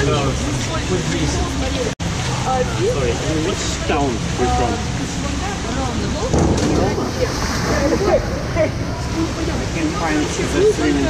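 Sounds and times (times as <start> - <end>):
voices in pool hall: 0.0 - 11.0.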